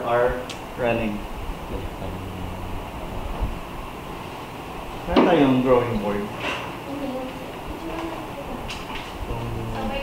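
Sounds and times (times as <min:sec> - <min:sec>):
low room noise rumble: 0:00.0 - 0:10.0.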